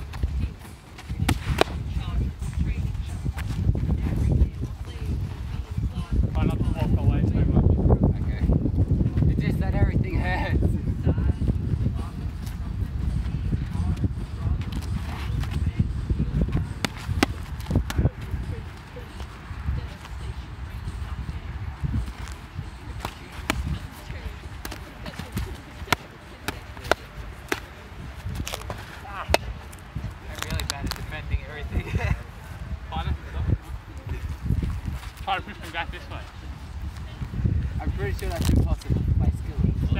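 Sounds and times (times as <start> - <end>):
wind rumble on microphone: 0.0 - 39.9.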